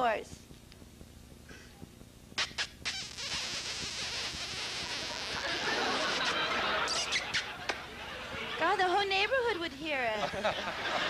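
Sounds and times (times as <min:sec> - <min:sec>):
man making kissing noises: 0:01.7 - 0:05.0, 0:06.9 - 0:07.5.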